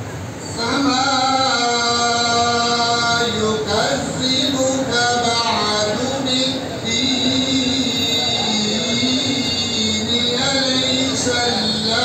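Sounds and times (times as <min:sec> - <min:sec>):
man reciting melodically over loudspeakers: 0:00.6 - 0:12.0.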